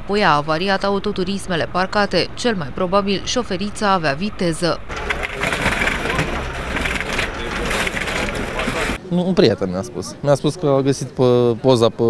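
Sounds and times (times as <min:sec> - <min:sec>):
indistinct voices: 0:00.0 - 0:09.3
dense steady crackling: 0:04.8 - 0:09.0.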